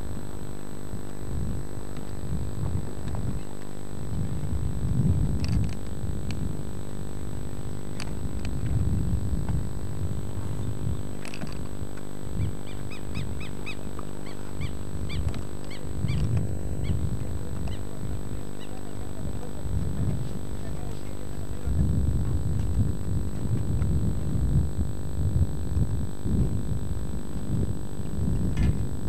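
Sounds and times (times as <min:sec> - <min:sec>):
low rumbling and hum: 0:00.0 - 0:29.0.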